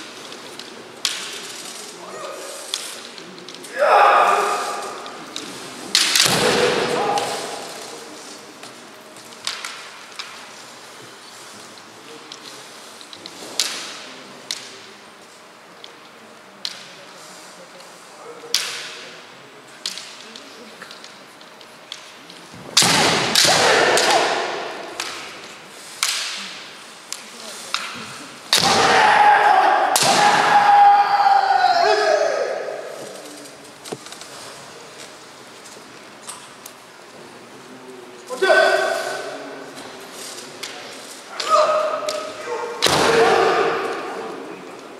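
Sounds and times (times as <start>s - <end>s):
bamboo swords clacking: 0.0s - 10.6s, 19.8s - 30.6s, 39.2s - 44.9s
fighters shouting: 3.7s - 5.0s, 6.3s - 7.8s, 23.2s - 24.9s, 28.6s - 33.0s, 38.3s - 39.3s, 41.3s - 44.6s
person shouting: 41.4s - 43.8s.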